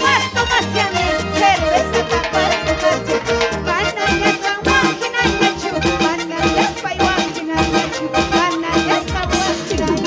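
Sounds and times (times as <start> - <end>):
harp and violin dance music: 0.0 - 10.0.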